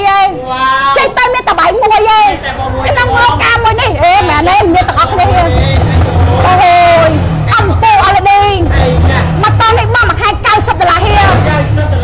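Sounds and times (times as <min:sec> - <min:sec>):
woman talking: 0:00.0 - 0:05.5, 0:06.4 - 0:08.7, 0:09.4 - 0:11.5.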